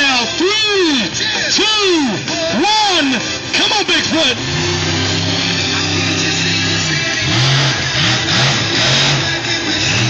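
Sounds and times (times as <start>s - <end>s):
music over loudspeakers: 0.0s - 10.0s
monster truck engine revving: 3.4s - 10.0s.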